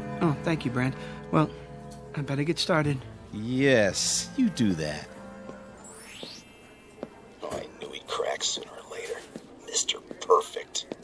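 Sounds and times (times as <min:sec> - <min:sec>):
whispering voices: 0:07.3 - 0:11.0.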